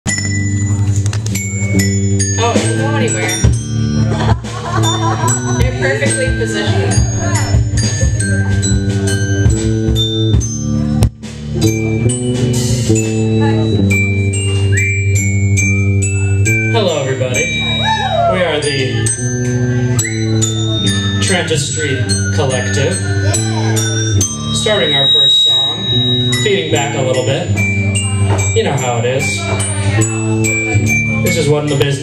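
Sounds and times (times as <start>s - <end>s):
glockenspiel notes: 0.1s - 32.0s
rock band playing: 0.1s - 32.0s.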